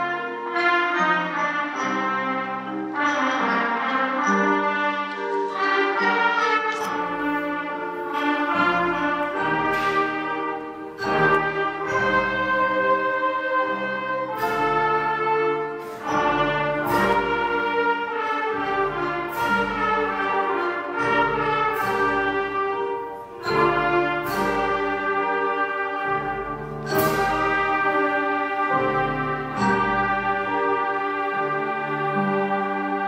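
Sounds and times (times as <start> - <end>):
wind band playing: 0.0 - 33.0.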